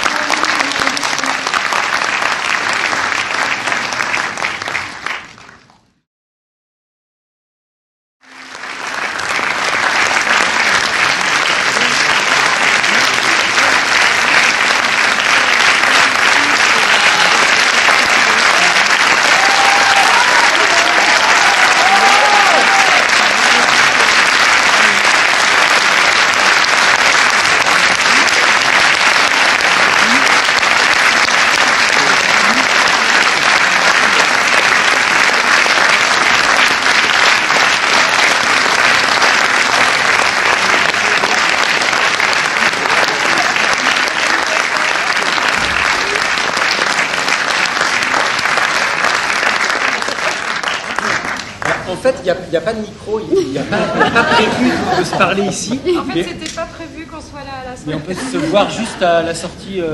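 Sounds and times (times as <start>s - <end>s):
audience applauding: 0.0s - 5.9s, 8.2s - 52.8s, 53.7s - 57.1s.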